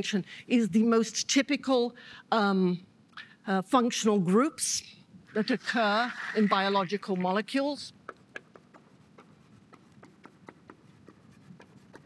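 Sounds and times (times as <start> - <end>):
chalk tapping on a blackboard: 8.0 - 12.0.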